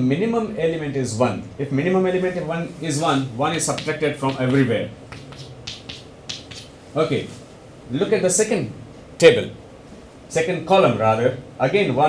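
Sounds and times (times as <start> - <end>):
chalk strokes on a blackboard: 3.7 - 6.8.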